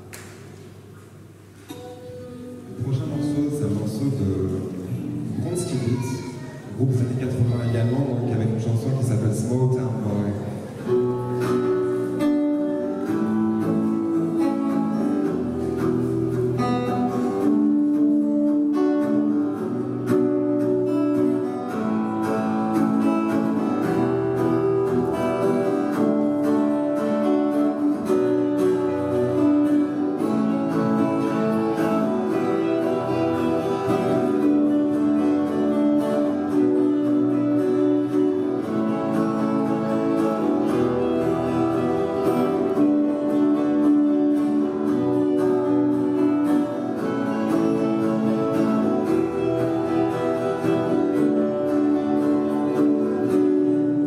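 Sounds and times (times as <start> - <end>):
acoustic guitars playing: 0.0 - 54.0.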